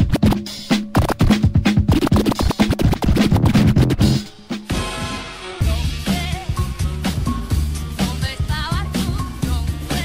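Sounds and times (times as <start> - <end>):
turntable scratching: 0.0 - 6.6
dj mix music with beat: 0.0 - 10.0.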